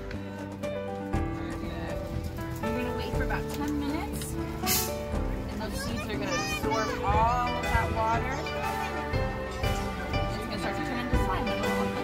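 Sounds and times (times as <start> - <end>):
background music: 0.0 - 12.0
children chattering: 5.5 - 12.0.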